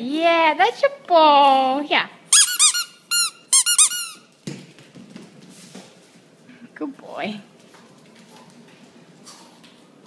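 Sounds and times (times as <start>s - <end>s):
squeaky toy ball squeaking: 2.3s - 4.3s.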